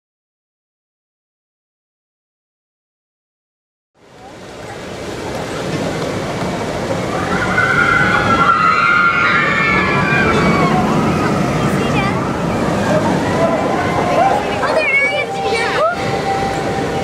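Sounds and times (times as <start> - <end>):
steady rushing wash: 4.0 - 17.0.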